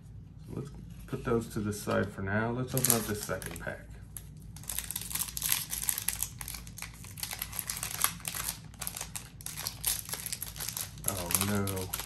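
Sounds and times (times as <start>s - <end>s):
foil wrapper crinkling: 2.7s - 12.0s.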